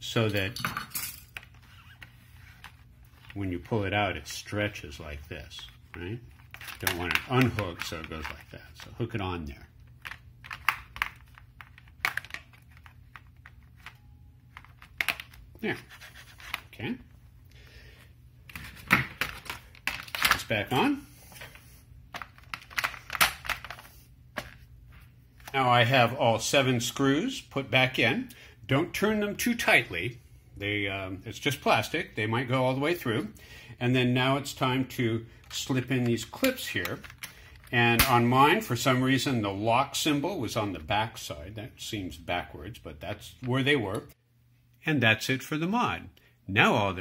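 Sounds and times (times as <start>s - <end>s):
faint steady low hum: 0.0s - 47.0s.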